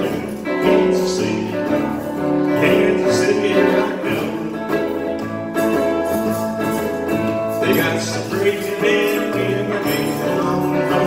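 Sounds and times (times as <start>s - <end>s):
electric guitar blues fill: 0.0s - 11.0s
person singing: 0.0s - 11.0s.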